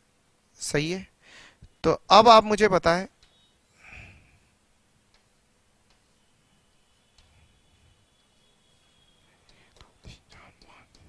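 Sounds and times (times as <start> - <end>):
chalk tapping and scratching: 9.4 - 11.0.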